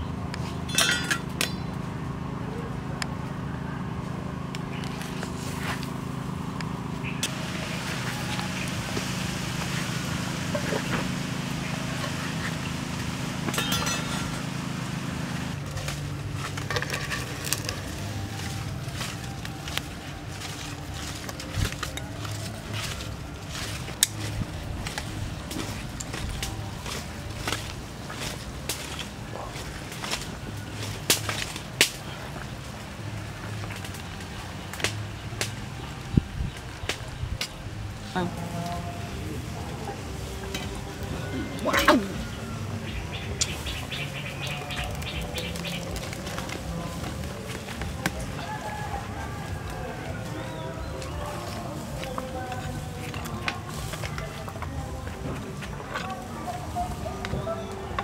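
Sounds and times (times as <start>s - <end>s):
steady low hum: 0.0s - 57.1s.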